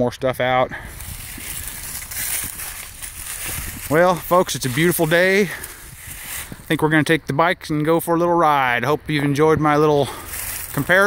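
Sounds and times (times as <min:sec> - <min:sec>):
dry leaves crunching underfoot: 0:00.9 - 0:06.7, 0:10.1 - 0:11.0.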